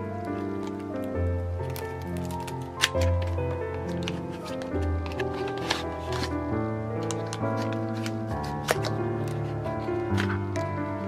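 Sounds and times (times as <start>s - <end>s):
background music: 0.0s - 11.0s
paperboard sleeve rustling and clicking: 0.2s - 10.8s.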